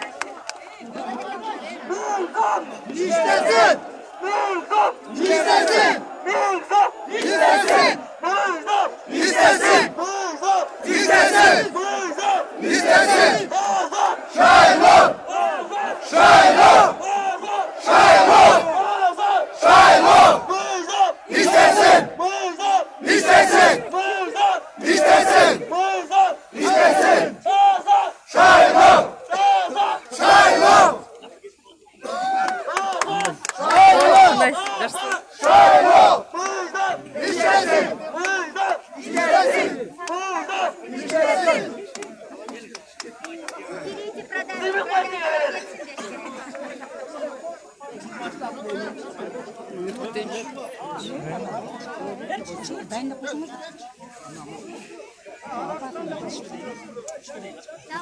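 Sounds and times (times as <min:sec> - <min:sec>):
crowd of men chanting: 0:01.4 - 0:31.1, 0:32.0 - 0:42.5.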